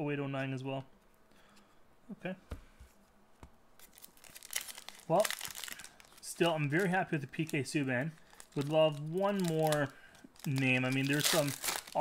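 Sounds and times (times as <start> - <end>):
wrapper crinkling and tearing: 3.8 - 12.0.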